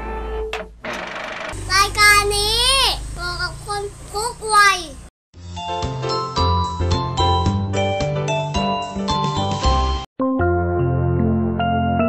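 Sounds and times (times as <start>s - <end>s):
high child-like voice: 1.7s - 5.1s.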